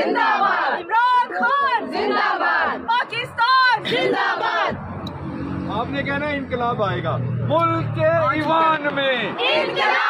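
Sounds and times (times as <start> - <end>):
women chanting slogans: 0.0 - 4.8, 9.4 - 10.0
low traffic hum: 0.0 - 10.0.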